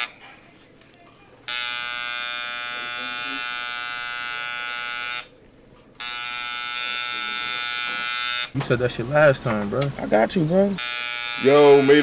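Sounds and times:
tattoo machine buzzing: 0:01.5 - 0:05.3, 0:06.0 - 0:08.6, 0:10.8 - 0:12.0.

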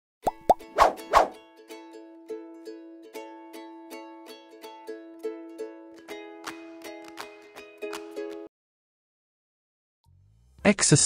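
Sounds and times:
light plucked-string music: 0:00.3 - 0:08.5
whooshes: 0:00.8 - 0:01.4.

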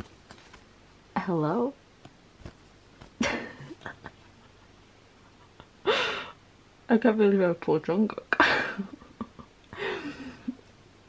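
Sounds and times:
woman speaking: 0:01.2 - 0:01.8, 0:06.9 - 0:08.5.

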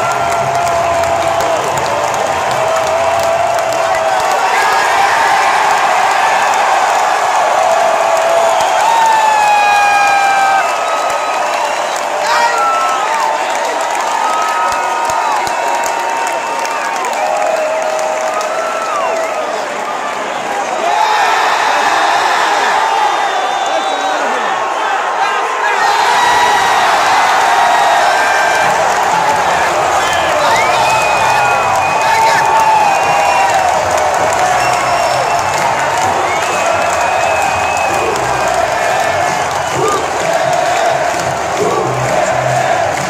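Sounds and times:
crowd cheering and applauding: 0:00.0 - 0:43.0
fans shouting nearby: 0:00.0 - 0:43.0.

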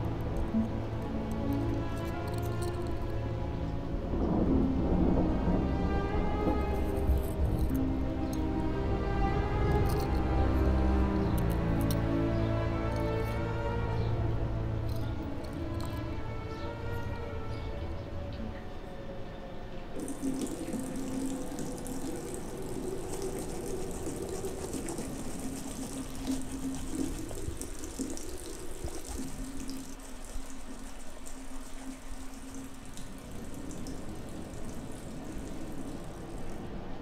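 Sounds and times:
low steady hum: 0:00.0 - 0:37.0
tap water running into sink: 0:20.0 - 0:36.6.

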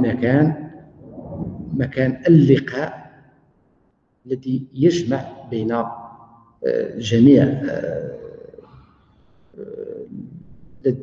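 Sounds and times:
man speaking: 0:00.0 - 0:00.5, 0:01.7 - 0:03.0, 0:04.3 - 0:08.6, 0:09.6 - 0:10.1
man humming mmm: 0:09.6 - 0:10.1.

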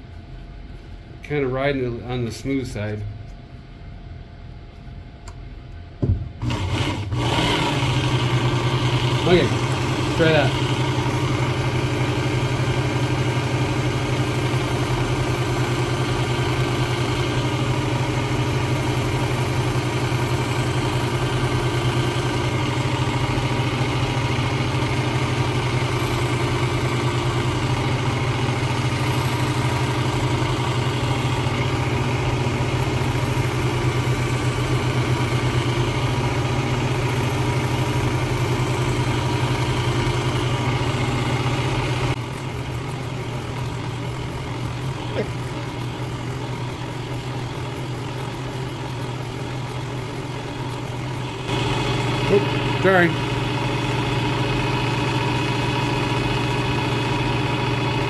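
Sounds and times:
electric belt sharpener humming: 0:06.4 - 0:58.0.

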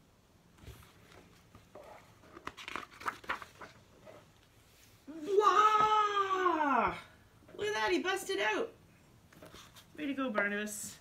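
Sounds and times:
book pages turning: 0:00.6 - 0:05.1, 0:09.3 - 0:10.5.

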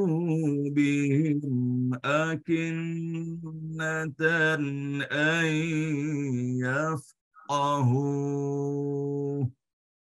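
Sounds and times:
man chanting melodically: 0:00.0 - 0:09.6.

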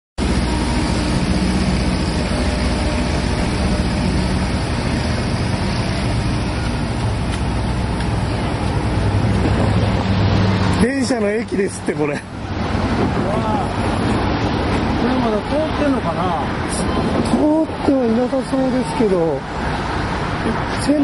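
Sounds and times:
low engine hum: 0:00.2 - 0:21.0
street traffic noise: 0:00.2 - 0:21.0.

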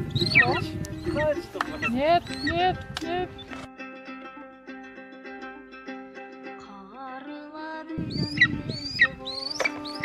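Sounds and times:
high sharp bird of prey calls: 0:00.0 - 0:02.7, 0:08.1 - 0:10.0
music with held notes: 0:00.0 - 0:10.0.

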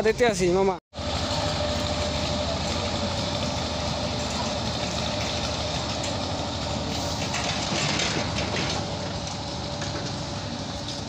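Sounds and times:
boat engine running: 0:01.0 - 0:11.0.

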